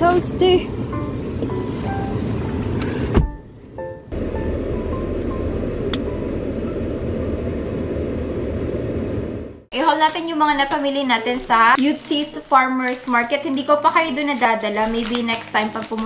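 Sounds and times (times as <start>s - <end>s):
soft background music: 0.0s - 7.0s
car cabin low rumble: 0.0s - 9.7s.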